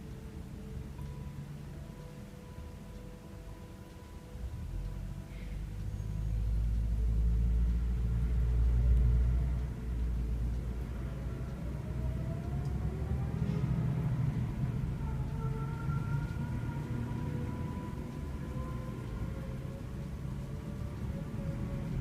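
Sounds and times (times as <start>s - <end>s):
faint drawn-out tones: 0.0s - 22.0s
low rumble: 0.0s - 22.0s.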